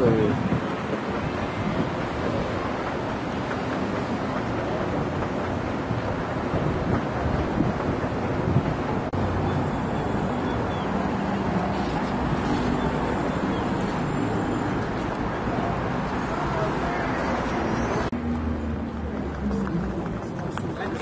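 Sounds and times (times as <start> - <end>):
wind on microphone: 0.0 - 16.1
busy street traffic roar: 0.0 - 21.0.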